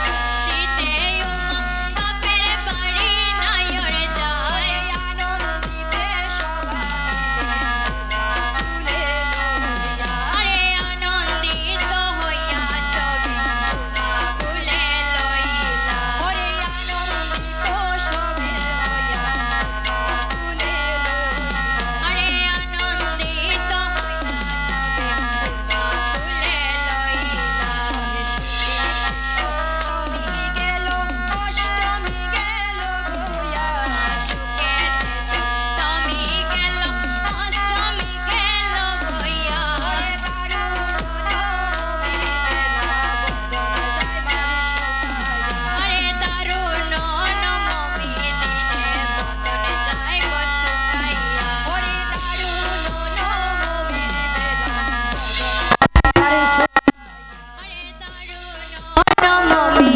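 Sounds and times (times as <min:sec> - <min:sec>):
woman singing over loudspeaker: 0:00.0 - 0:07.6, 0:08.8 - 0:13.5, 0:14.1 - 0:19.6, 0:20.4 - 0:24.5, 0:26.1 - 0:43.2, 0:44.0 - 0:56.9, 0:57.6 - 0:59.9
instrumental accompaniment: 0:00.0 - 0:59.9
drum strokes dropping in pitch: 0:55.7 - 0:57.0
women singing folk song: 0:57.7 - 0:59.9.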